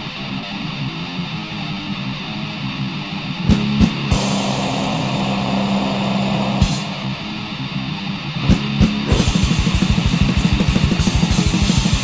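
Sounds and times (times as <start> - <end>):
distorted electric guitar chord: 0.2 - 12.0
drum and cymbal hit: 3.5 - 7.4, 8.4 - 12.0.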